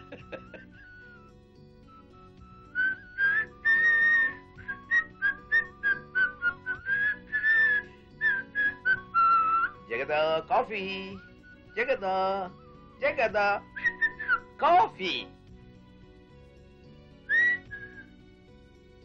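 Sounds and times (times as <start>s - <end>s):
soft background music: 0.0s - 19.0s
man whistling a tune: 0.5s - 9.9s, 11.0s - 14.6s, 17.3s - 18.2s.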